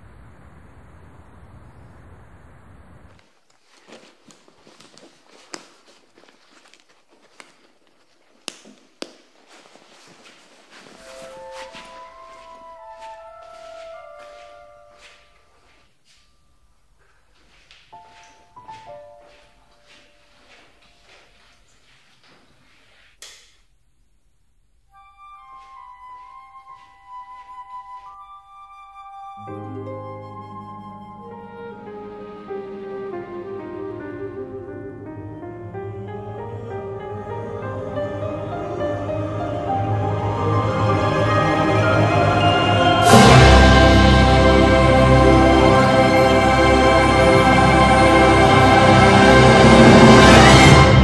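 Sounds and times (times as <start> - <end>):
books and backpack handled: 3.2 - 15.9
soft music with held notes: 11.0 - 16.6, 17.9 - 21.5, 24.9 - 51.0.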